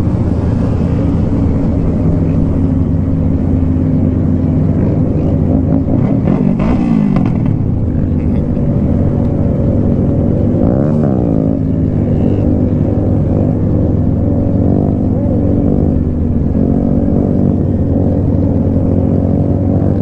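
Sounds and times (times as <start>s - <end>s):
motorcycle engine running steadily: 0.0s - 20.0s
other motorcycles riding nearby: 0.0s - 20.0s.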